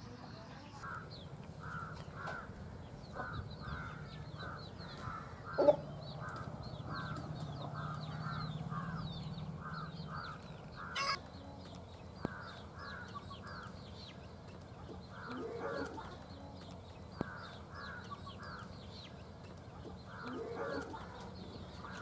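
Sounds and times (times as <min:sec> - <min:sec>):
bird giving short harsh calls: 0:10.8 - 0:11.2
faint high chirps: 0:11.0 - 0:11.2.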